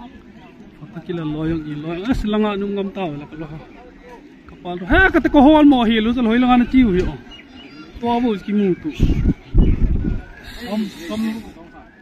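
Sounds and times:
wind buffeting microphone: 4.9s - 11.6s
man speaking or laughing: 10.5s - 11.6s.

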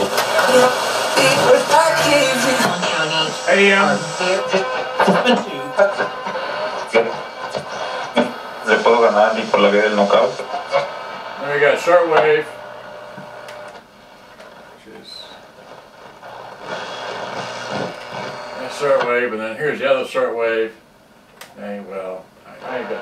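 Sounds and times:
radio broadcast voice: 0.0s - 13.7s, 14.5s - 19.8s, 22.5s - 23.0s
radio static hiss: 0.0s - 20.8s, 21.5s - 23.0s.

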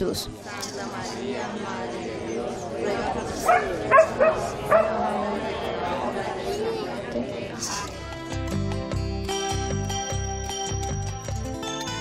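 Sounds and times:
murmur of voices: 0.0s - 9.8s
dog barking: 3.4s - 5.1s.

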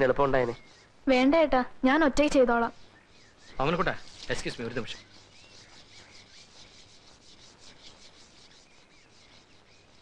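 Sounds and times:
bird chirps: 0.3s - 1.0s, 2.4s - 10.0s
insect chirping: 2.3s - 10.0s.

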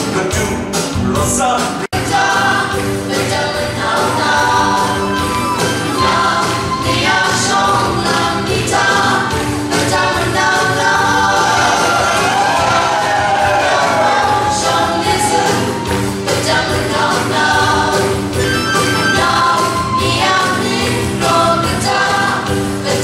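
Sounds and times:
group singing: 0.0s - 23.0s
instrumental accompaniment: 0.0s - 23.0s.

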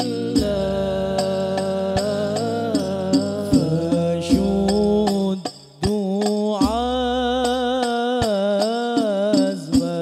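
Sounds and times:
man singing devotional song: 0.0s - 10.0s
percussion strikes: 0.0s - 10.0s.

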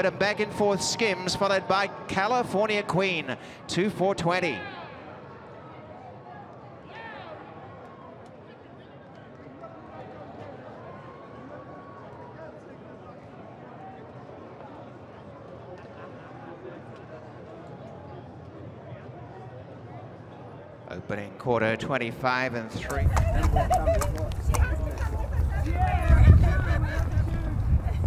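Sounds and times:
murmur of distant voices: 0.0s - 21.8s, 22.6s - 28.0s.

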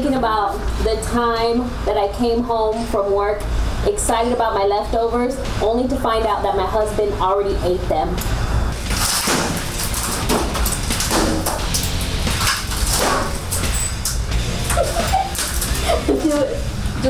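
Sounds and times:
metal bat smashing furniture: 8.8s - 14.0s.

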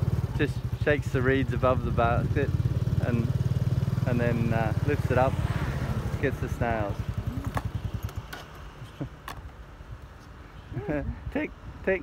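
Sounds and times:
small motor engine rumble: 0.0s - 9.6s.

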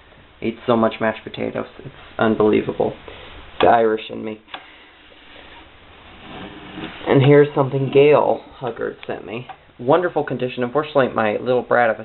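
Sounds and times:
low steady background hiss: 0.0s - 12.0s.

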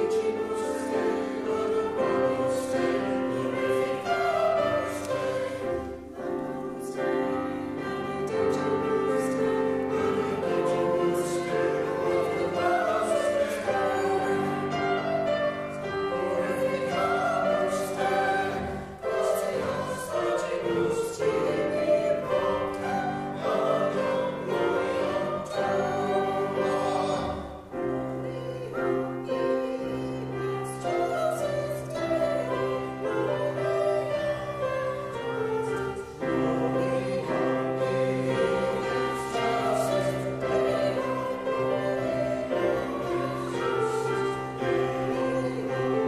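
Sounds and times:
mixed choir singing: 0.0s - 46.0s.

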